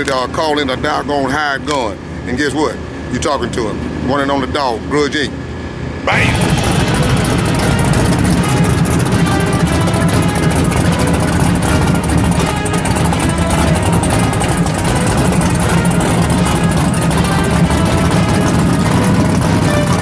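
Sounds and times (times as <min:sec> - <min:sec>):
background music: 0:06.1 - 0:20.0
car engine idling rumble: 0:06.1 - 0:20.0.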